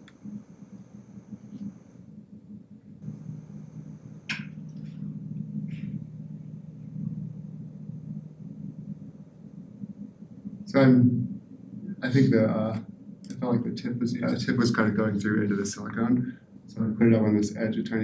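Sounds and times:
low room hum: 0.0 - 18.0.

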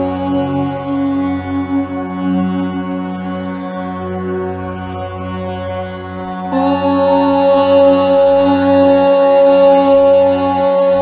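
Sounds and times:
low steady drone: 0.0 - 11.0
long held chanted note: 6.5 - 11.0.

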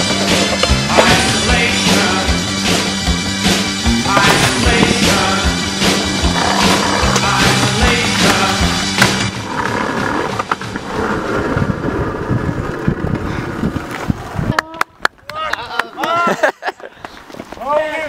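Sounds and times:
skateboard wheels rolling on brick: 0.0 - 2.3, 3.9 - 15.3
skateboard clacks: 4.0 - 5.4, 6.2 - 10.9.

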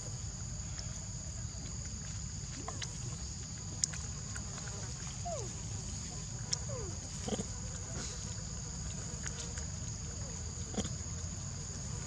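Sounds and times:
monkey low grunt: 6.6 - 8.4.

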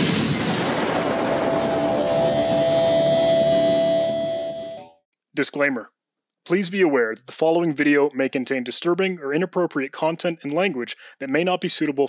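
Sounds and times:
steady held tone: 1.2 - 5.0.

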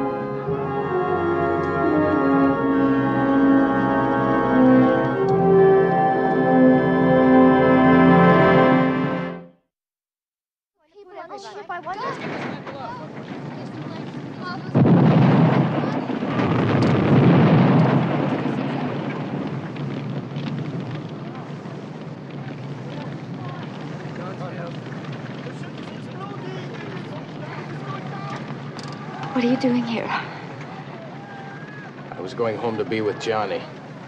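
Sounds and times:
loud blasts: 12.0 - 34.0
steady low rumble: 13.1 - 31.2
murmuring voices: 20.8 - 34.0.

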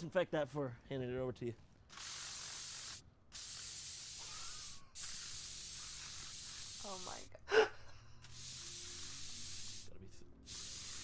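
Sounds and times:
spray hissing: 1.9 - 7.3, 8.2 - 11.0.

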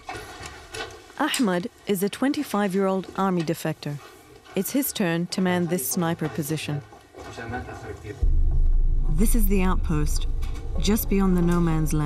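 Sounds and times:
loud steady low rumble: 8.2 - 12.0.

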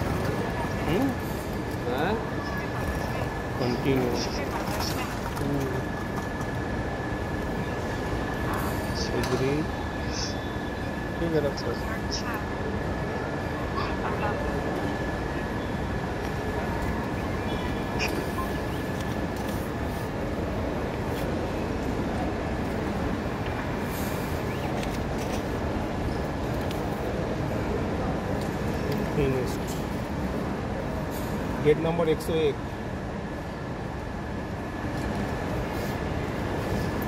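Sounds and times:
airport terminal rumble: 0.0 - 37.0.

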